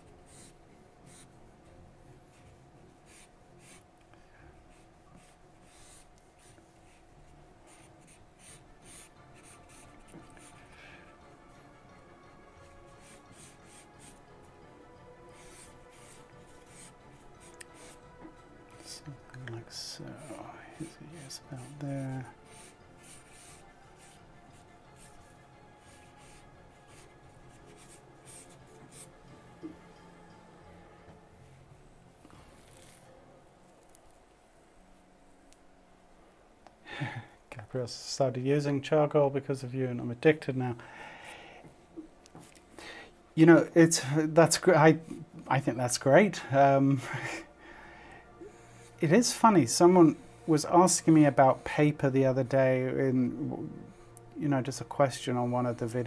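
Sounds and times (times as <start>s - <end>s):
pencil scratching on paper: 0.2s - 1.4s, 2.3s - 3.8s, 4.7s - 7.0s, 7.6s - 10.7s, 12.6s - 14.2s, 15.2s - 18.0s, 20.0s - 29.2s.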